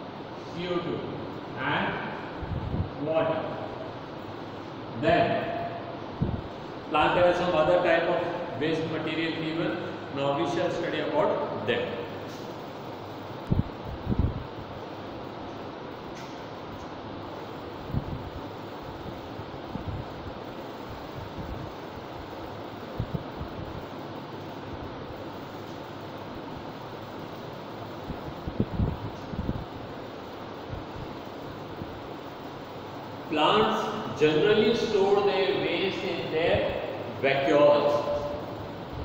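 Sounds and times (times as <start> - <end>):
room noise: 0.0 - 39.0.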